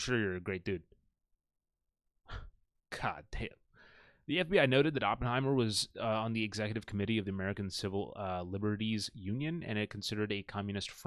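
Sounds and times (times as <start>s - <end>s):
man sighing: 2.2s - 2.6s.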